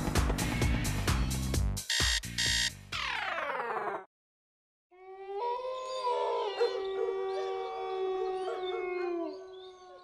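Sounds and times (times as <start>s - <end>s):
cartoon dogs howling: 5.0s - 10.0s.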